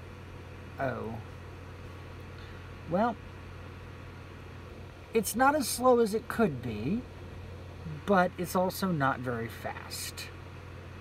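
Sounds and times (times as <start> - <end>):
steady low hum: 0.0 - 11.0
man speaking: 0.8 - 1.3, 2.9 - 3.2, 5.2 - 7.0, 7.9 - 10.3.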